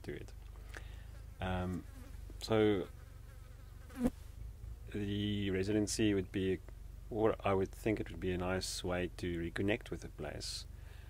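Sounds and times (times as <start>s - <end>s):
insect buzzing: 0.9s - 4.3s.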